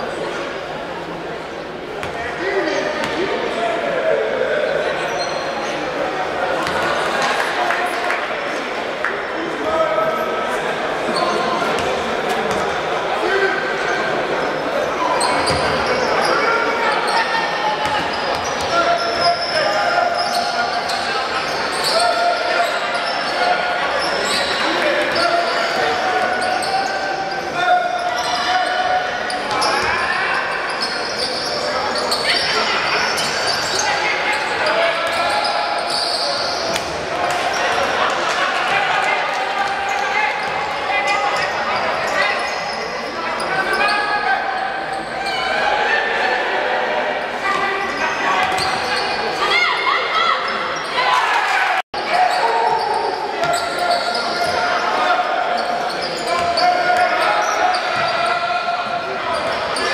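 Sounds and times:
voices calling and talking: 0.0 - 59.9.

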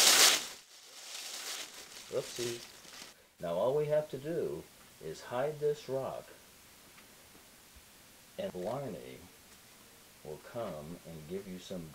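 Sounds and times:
paper rustling: 0.0 - 3.2
tissue paper crinkling and tearing: 0.0 - 3.2.

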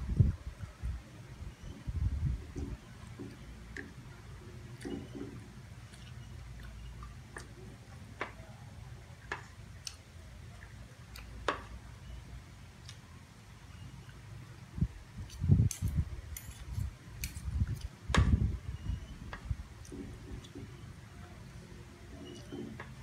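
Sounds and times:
dull low thumps: 0.0 - 3.5, 17.5 - 20.4.

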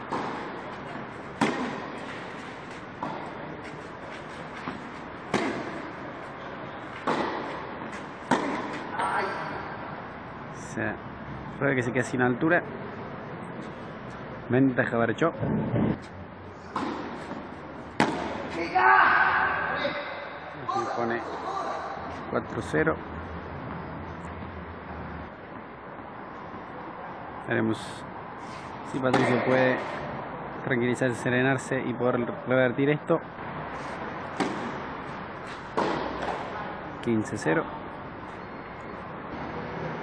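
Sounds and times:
tennis ball struck by racket: 0.0 - 9.0, 16.7 - 18.7, 29.1 - 30.0, 33.8 - 36.6
man speaking: 18.5 - 23.0, 37.0 - 37.7.

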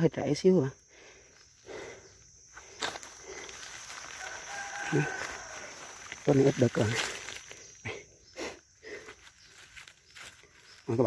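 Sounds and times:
dry leaves rustling: 2.6 - 7.8, 9.1 - 11.0.

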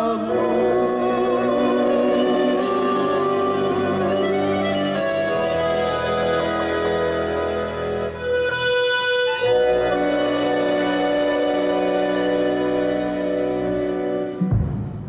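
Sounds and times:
accordion chords: 0.0 - 14.8
double bass line: 0.0 - 15.0.

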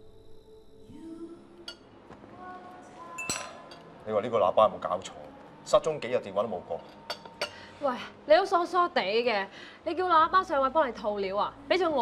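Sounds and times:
quiet cafe background: 0.9 - 12.0
china cup clinking: 3.2 - 3.9, 6.8 - 7.6.

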